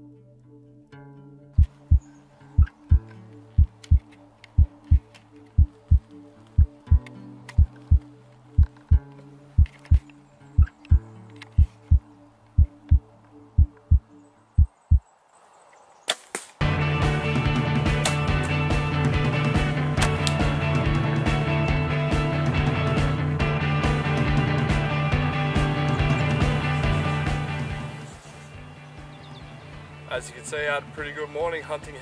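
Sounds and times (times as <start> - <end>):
heartbeat double beat: 1.6 - 2.0, 3.6 - 4.0, 4.6 - 5.0, 5.6 - 6.0, 6.6 - 8.0, 10.9 - 12.0, 12.6 - 13.0, 13.6 - 14.0, 14.6 - 15.0
sharp clicks: 2.6 - 12.0
loud music: 16.6 - 27.9.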